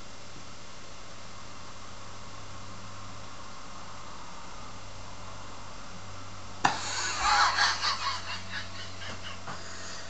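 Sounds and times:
low hum and hiss: 0.0 - 10.0
man laughing breathily: 6.7 - 10.0.

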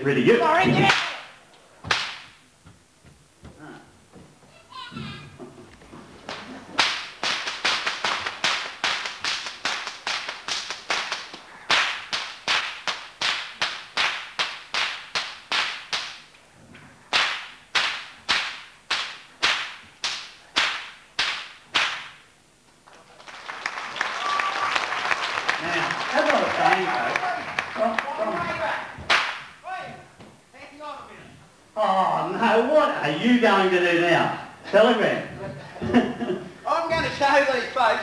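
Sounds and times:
whip cracking: 0.8 - 2.4, 6.3 - 16.3, 17.1 - 22.3, 29.1 - 29.6
audience applause: 22.9 - 28.7.

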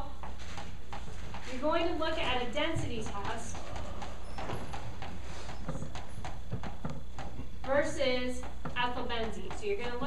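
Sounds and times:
chalk tapping and scraping: 0.0 - 10.0.

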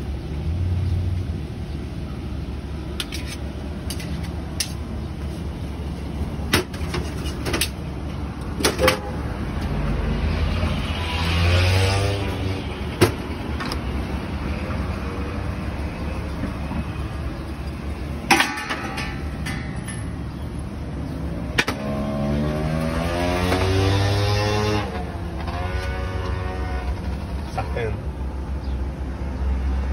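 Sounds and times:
road traffic hum: 0.0 - 29.9
vehicles speeding up: 9.3 - 18.2, 21.0 - 27.9
metal utensils clinking on pans: 18.3 - 20.1.

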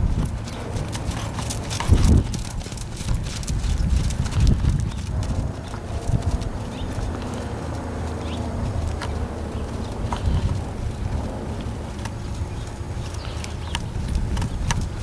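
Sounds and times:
horse hoofbeats on dirt: 0.0 - 15.0.

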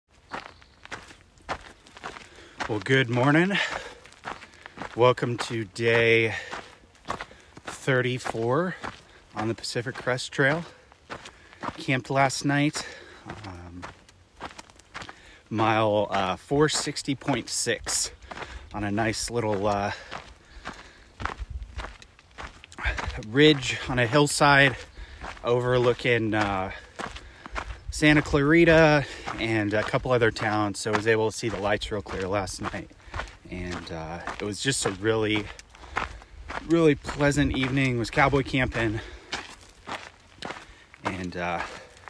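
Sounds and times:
footsteps on dirt trail: 0.1 - 42.0.

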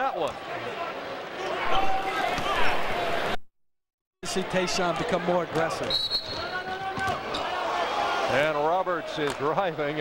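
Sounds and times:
arena crowd noise: 0.0 - 3.4, 4.2 - 10.0.

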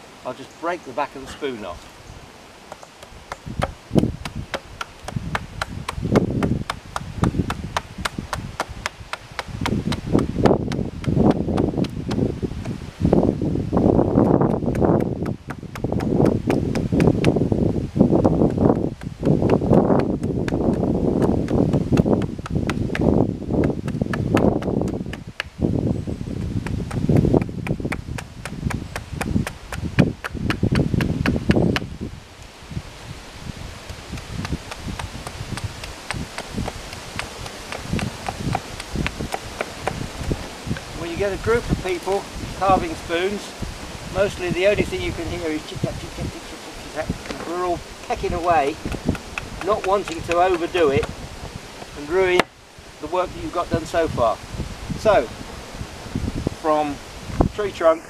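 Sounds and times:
wind buffeting microphone: 0.7 - 58.0
axe chopping wood: 2.7 - 12.8, 33.9 - 40.9, 48.4 - 51.2.

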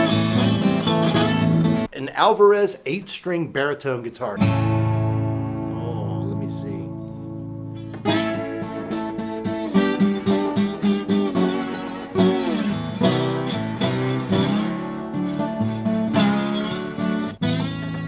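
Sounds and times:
plucked acoustic guitar notes: 0.0 - 1.9, 4.4 - 18.0
slide guitar notes: 0.0 - 1.9, 4.4 - 18.0.

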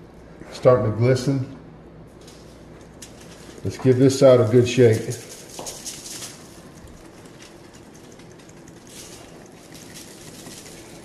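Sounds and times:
seasoning granules pattering on foil: 2.2 - 11.0.

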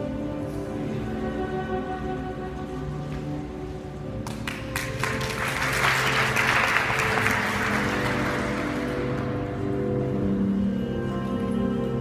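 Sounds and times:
audience applause: 4.2 - 9.4.

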